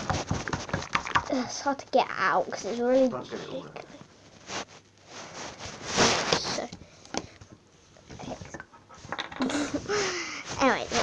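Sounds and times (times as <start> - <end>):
slime squelching: 0.0 - 3.4.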